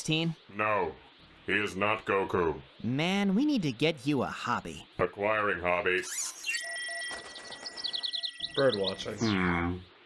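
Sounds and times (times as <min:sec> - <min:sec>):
small bird chirping rapidly: 0:00.0 - 0:10.0
short electronic beeps: 0:06.0 - 0:09.4
steady high tone: 0:06.5 - 0:09.8.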